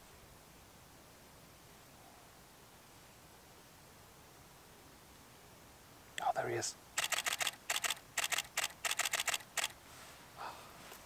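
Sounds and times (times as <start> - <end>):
camera shutter rapid clicks: 7.0 - 9.8.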